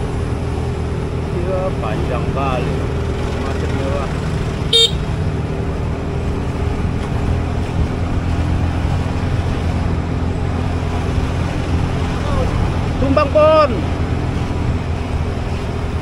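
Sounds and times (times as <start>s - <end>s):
motorcycle engine running: 0.0s - 16.0s
wind noise on microphone: 4.7s - 16.0s.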